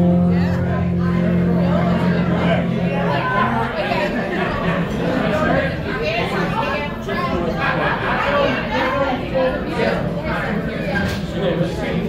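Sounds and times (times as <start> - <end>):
band low held note: 0.0 - 5.4
many voices chattering: 0.0 - 12.0.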